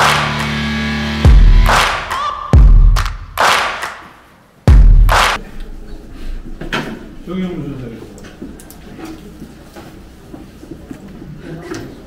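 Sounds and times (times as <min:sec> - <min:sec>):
heavy deep hit: 0:00.0 - 0:03.8, 0:04.7 - 0:05.4.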